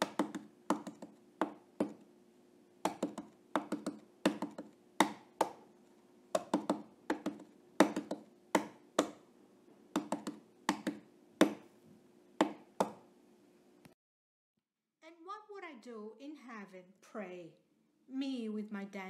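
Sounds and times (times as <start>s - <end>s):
sharp taps or knocks: 0.0s - 2.0s, 2.8s - 5.6s, 6.4s - 9.2s, 10.0s - 11.6s
faint steady hum: 0.0s - 14.0s, 15.1s - 19.0s.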